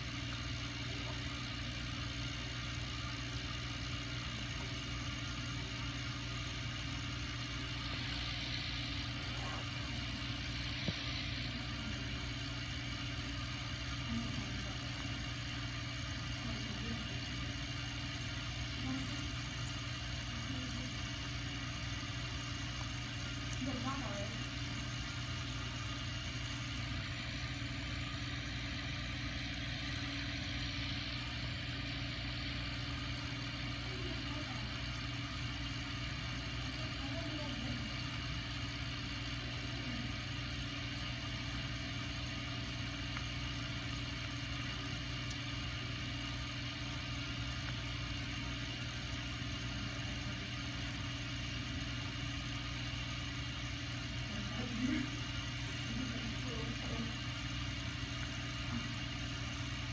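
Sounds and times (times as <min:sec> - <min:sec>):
mechanical hum with hiss: 0:00.0 - 0:59.9.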